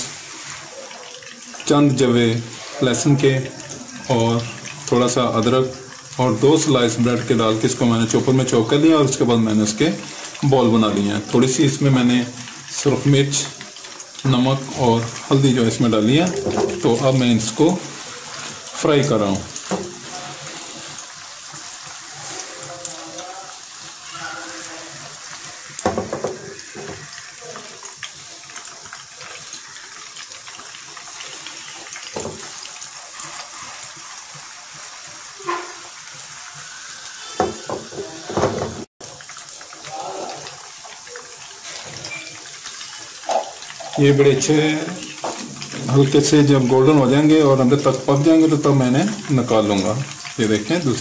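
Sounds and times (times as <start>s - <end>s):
food sizzling in hot oil: 0.0s - 51.0s.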